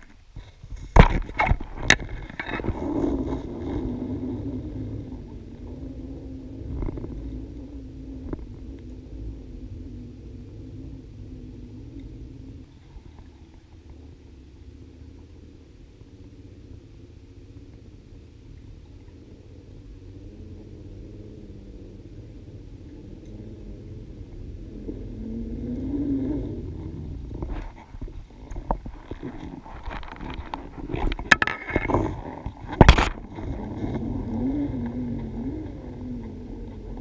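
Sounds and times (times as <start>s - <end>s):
low underwater rumble: 0.0s - 37.0s.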